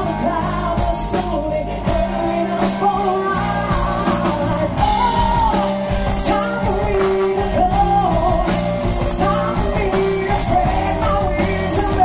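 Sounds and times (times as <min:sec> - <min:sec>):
bass guitar: 0:00.0 - 0:12.0
drums: 0:00.0 - 0:12.0
electric guitar: 0:00.0 - 0:12.0
woman singing lead: 0:00.0 - 0:12.0.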